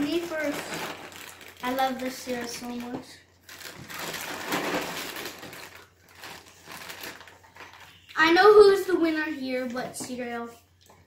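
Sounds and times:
cereal box crinkling open: 0.0 - 7.8.

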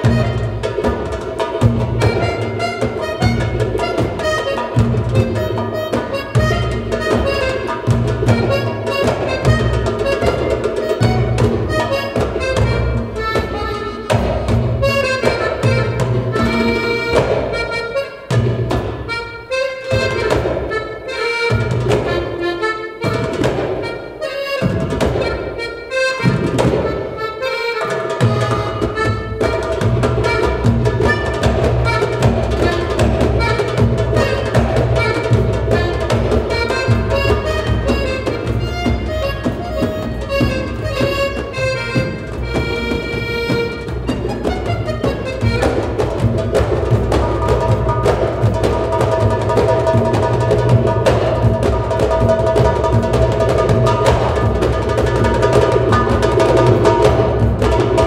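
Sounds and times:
accordion playing: 0.0 - 58.0
goblet drums: 0.0 - 58.0.

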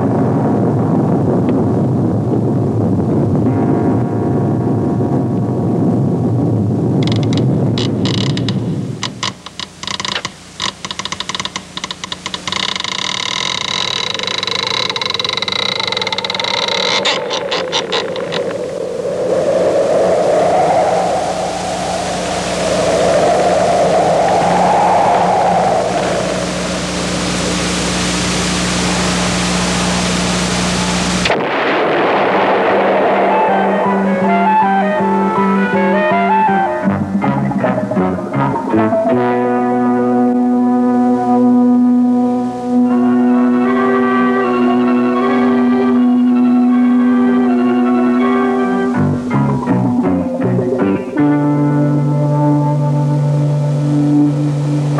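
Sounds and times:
low noisy rumble: 0.0 - 54.9
rapid clicking and squealing: 7.0 - 18.6
steady low hum: 13.6 - 47.5, 48.2 - 54.9
wavering wail: 14.0 - 27.5, 33.0 - 41.5.

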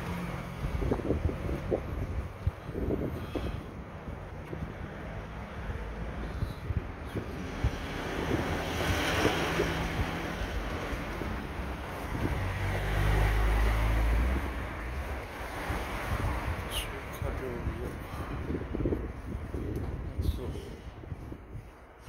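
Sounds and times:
traffic: 0.0 - 22.0
wind buffeting microphone: 0.0 - 22.0.

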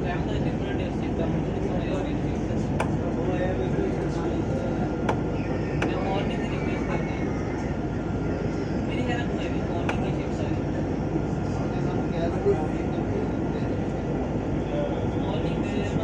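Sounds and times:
tram rumbling on track: 0.0 - 16.0.

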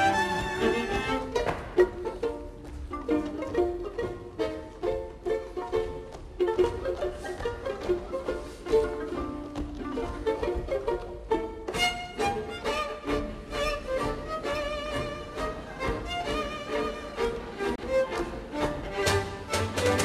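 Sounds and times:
string quartet playing: 0.0 - 20.0.

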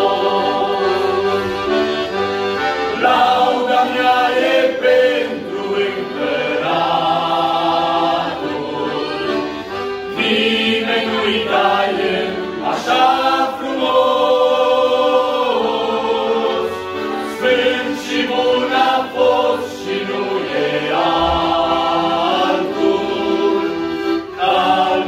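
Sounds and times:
male group singing a hymn: 0.0 - 1.7, 2.7 - 25.0
accordion: 0.0 - 25.0.

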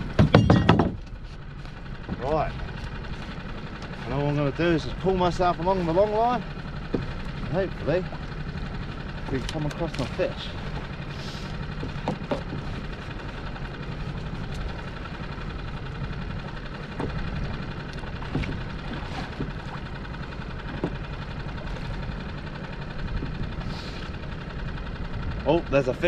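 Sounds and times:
steady low rumble: 0.0 - 26.0
water splashes: 16.8 - 24.0.

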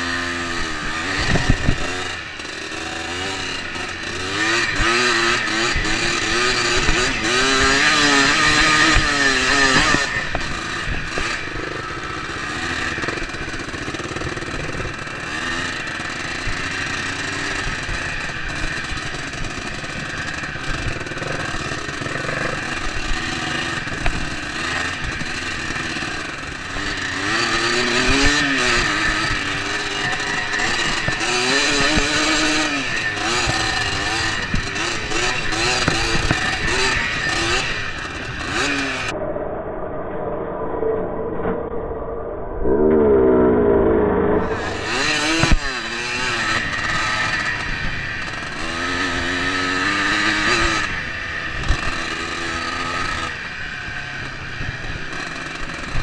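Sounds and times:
dirt bike engine revving: 0.0 - 39.3, 42.7 - 56.0.

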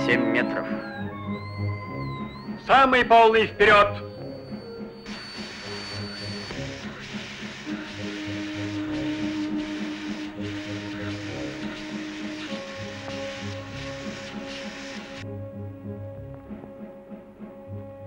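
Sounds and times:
orchestral film score: 0.0 - 5.1
loud hissing rush of steam: 5.1 - 15.2.

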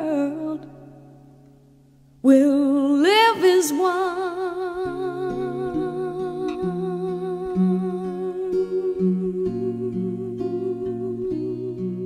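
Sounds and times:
picked acoustic guitar: 0.0 - 12.0.

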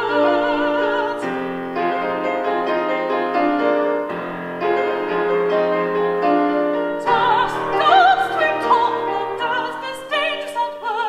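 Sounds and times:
piano playing held chords: 0.0 - 11.0.

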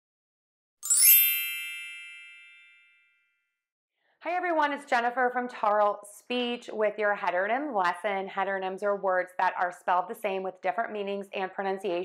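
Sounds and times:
bell-like logo chime: 0.8 - 3.4.

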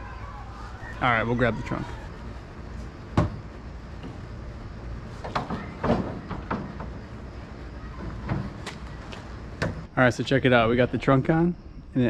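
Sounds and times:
metal knocks and clunks: 3.1 - 4.3, 5.2 - 7.3.

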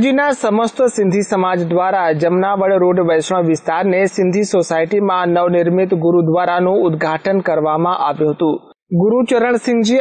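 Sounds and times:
news voice-over speech: 0.0 - 10.0.

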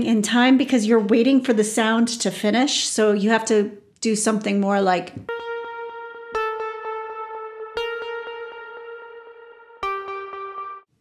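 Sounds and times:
synthesizer plucked notes with echo: 5.3 - 10.9.

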